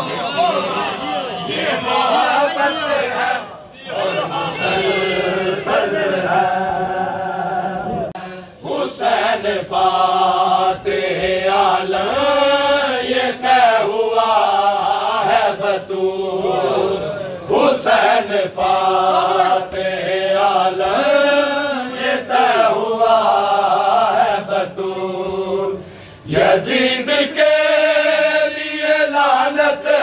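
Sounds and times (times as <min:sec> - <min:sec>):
men chanting a lament: 0:00.0 - 0:30.0.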